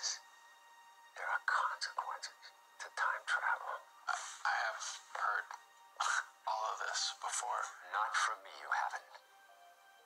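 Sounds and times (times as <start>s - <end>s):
man talking: 3.6s - 9.2s.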